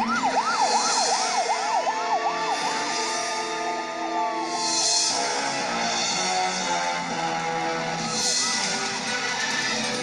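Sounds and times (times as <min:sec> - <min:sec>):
siren fast yelp: 0:00.0 - 0:02.9, 0:08.0 - 0:09.4
wailing siren: 0:00.0 - 0:10.0.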